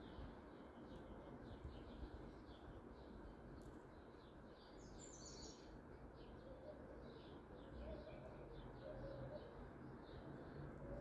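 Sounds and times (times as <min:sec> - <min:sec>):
small birds chirping: 0:00.0 - 0:10.6
low steady background noise: 0:00.0 - 0:11.0.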